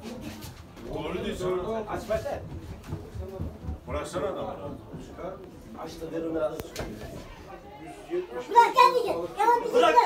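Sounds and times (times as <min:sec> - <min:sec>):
men talking: 0:00.8 - 0:10.0.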